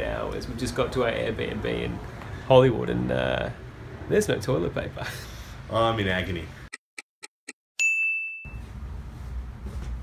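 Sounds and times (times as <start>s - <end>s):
high bell ding: 7.8s - 8.7s.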